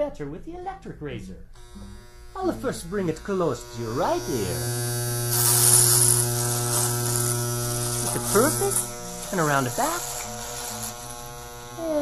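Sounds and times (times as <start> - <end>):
electric razor buzzing: 1.6 - 12.0.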